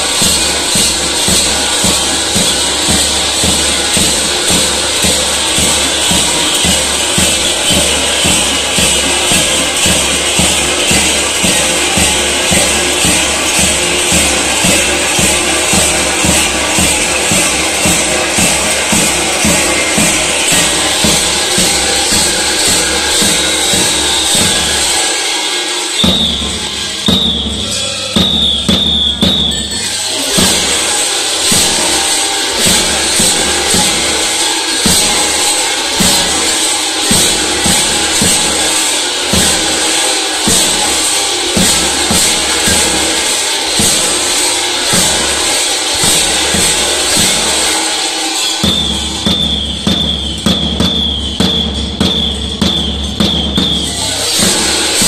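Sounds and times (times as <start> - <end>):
drums beating a dance rhythm: 0.0 - 55.0
large bells jangling: 0.0 - 55.0.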